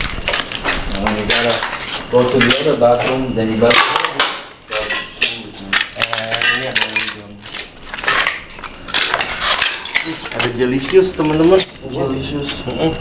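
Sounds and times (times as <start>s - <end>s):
footsteps crunching over rubble: 0.0s - 4.2s, 4.8s - 13.0s
sharp clinks and scrapes: 0.2s - 12.8s
low voices: 0.9s - 7.5s, 9.8s - 13.0s.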